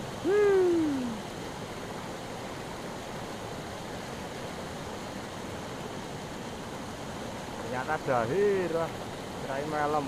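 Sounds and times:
river rushing over rocks: 0:00.0 - 0:10.0.

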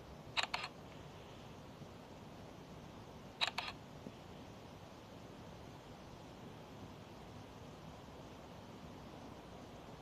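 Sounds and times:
faint steady hiss: 0:00.0 - 0:10.0
sharp clicks: 0:00.4 - 0:00.8, 0:03.4 - 0:03.8.

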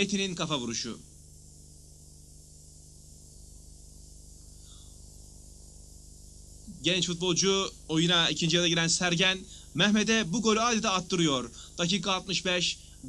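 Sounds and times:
electrical hum: 0:00.0 - 0:13.0
steady low hiss: 0:00.0 - 0:13.0.

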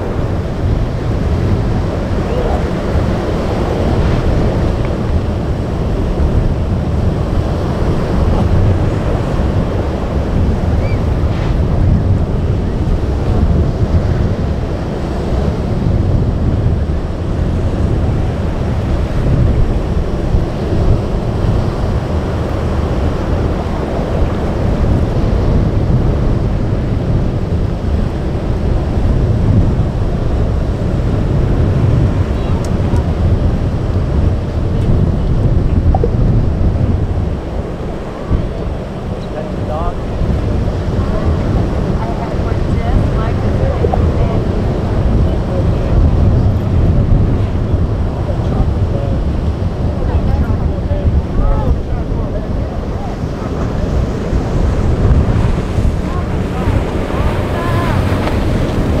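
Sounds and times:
breaking surf: 0:00.0 - 0:59.0
heavy low rumble: 0:00.0 - 0:59.0
wind buffeting microphone: 0:00.0 - 0:59.0.

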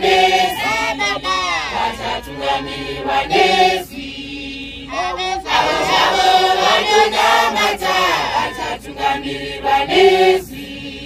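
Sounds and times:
women singing church chant: 0:00.0 - 0:11.0.

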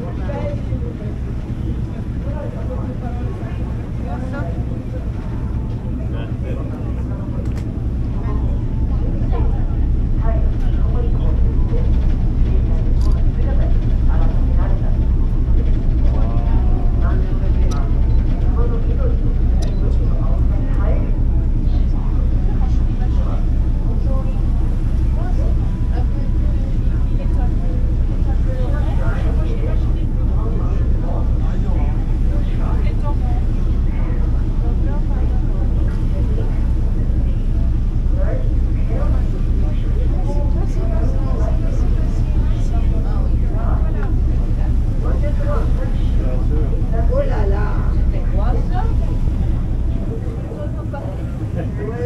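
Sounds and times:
ferry engine throbbing: 0:00.0 - 0:52.0
indistinct voices chattering: 0:00.0 - 0:52.0.

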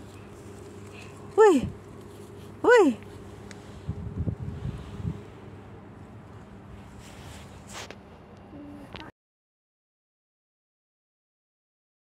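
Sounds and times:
low rumble: 0:00.0 - 0:07.3.

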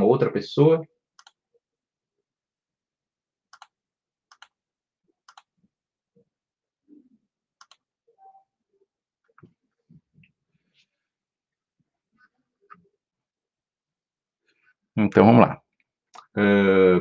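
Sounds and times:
computer mouse clicks: 0:01.2 - 0:01.4, 0:03.5 - 0:04.6, 0:05.2 - 0:05.5, 0:07.6 - 0:07.9.

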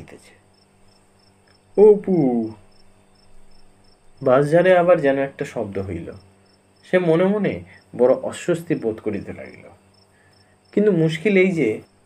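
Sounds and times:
man reading aloud: 0:00.0 - 0:00.4, 0:01.7 - 0:02.7, 0:04.2 - 0:09.8, 0:10.7 - 0:11.9
crickets chirping: 0:00.0 - 0:12.0.

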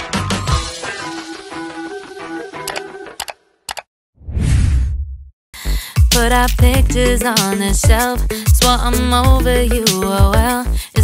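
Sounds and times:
music: 0:00.0 - 0:03.2, 0:05.6 - 0:11.0.

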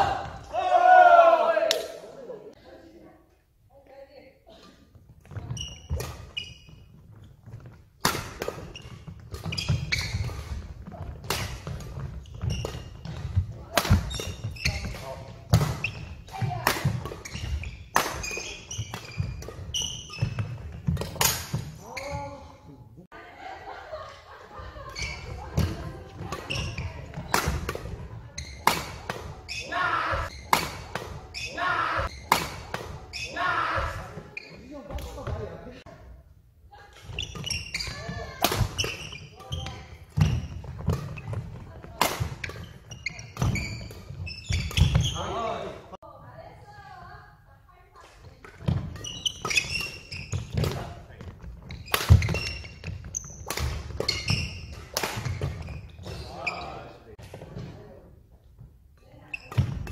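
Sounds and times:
racket hitting shuttlecock: 0:07.4 - 0:21.8, 0:25.1 - 0:34.3, 0:37.0 - 0:45.0, 0:51.7 - 0:56.2.

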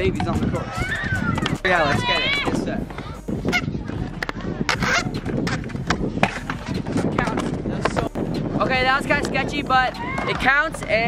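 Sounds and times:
scooter wheels rolling on concrete: 0:00.0 - 0:08.1, 0:08.8 - 0:11.0
people calling out: 0:00.6 - 0:03.7.

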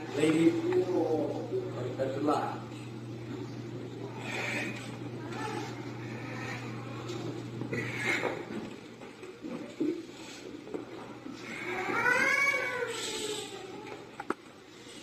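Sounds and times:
wailing cry: 0:04.2 - 0:07.0, 0:11.4 - 0:14.0.

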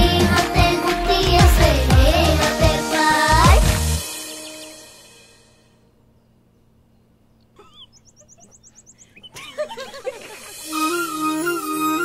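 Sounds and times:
small birds chirping: 0:04.3 - 0:04.9, 0:06.0 - 0:10.5.

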